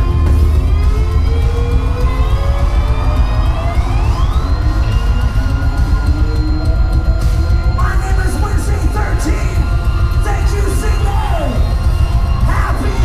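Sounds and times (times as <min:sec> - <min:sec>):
heavy metal band playing: 0:00.0 - 0:13.0
siren-like rising tone: 0:00.0 - 0:13.0.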